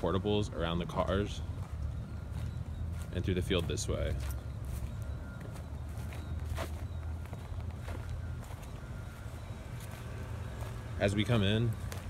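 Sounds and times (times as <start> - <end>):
footsteps on grass and dirt: 0.2 - 12.0.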